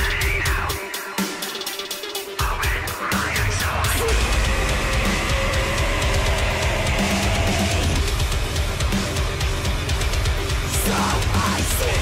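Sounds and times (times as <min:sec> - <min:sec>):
heavy metal song: 0:00.0 - 0:12.0.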